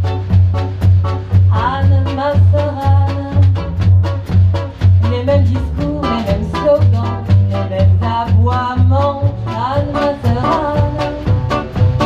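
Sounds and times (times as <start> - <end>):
acoustic swing band playing: 0.0 - 12.0
double bass notes: 0.0 - 12.0.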